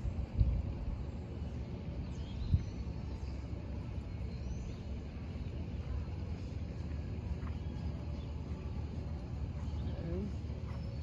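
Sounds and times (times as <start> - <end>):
low rumble on microphone: 0.0 - 11.0.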